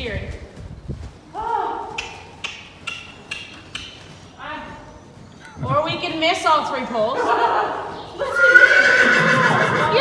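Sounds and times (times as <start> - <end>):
horse trotting on soft ground: 0.0 - 7.2.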